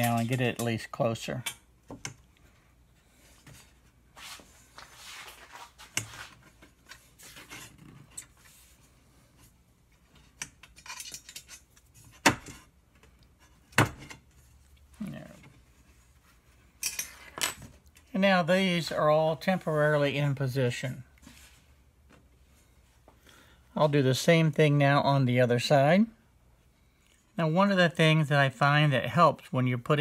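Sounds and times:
light metal clinks and scrapes: 10.2 - 12.1, 16.7 - 17.6.

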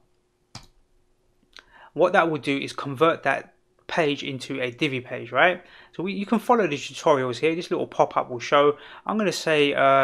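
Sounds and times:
computer mouse click: 0.5 - 0.8.

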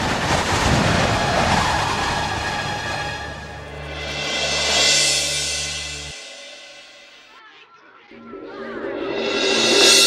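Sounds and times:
stormy wind rushing: 0.0 - 6.9.

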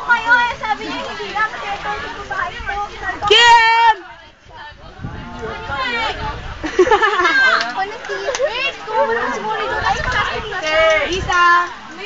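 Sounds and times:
young voices talking and calling: 0.0 - 12.0.

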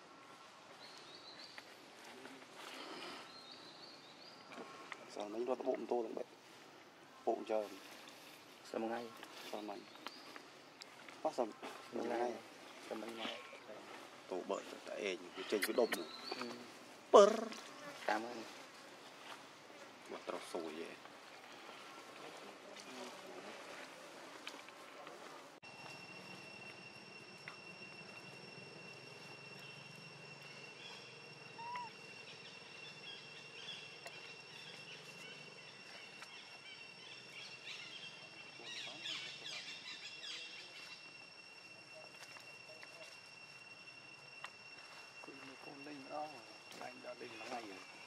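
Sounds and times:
high insect drone: 0.0 - 48.0
bird chirps: 7.8 - 17.9, 25.6 - 48.0
macaque calling: 31.5 - 32.0.

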